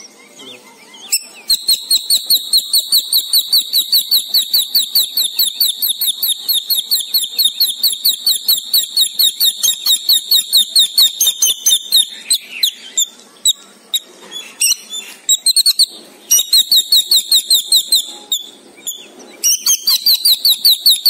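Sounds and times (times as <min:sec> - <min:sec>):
high-pitched bird chirping: 0:00.0 - 0:21.0
thin whistle: 0:01.5 - 0:12.0.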